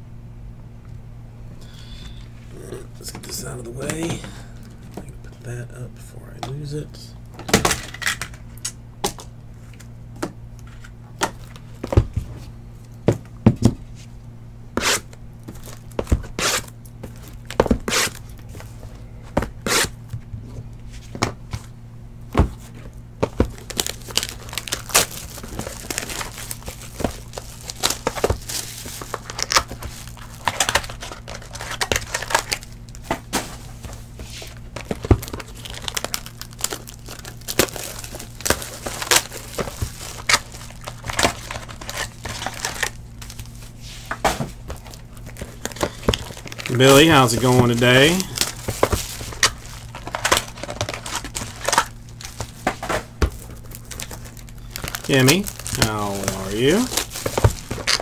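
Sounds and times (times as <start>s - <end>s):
steady low hum: 0.0s - 58.0s
wrapper crinkling and tearing: 23.5s - 33.1s, 33.7s - 43.8s, 44.6s - 58.0s.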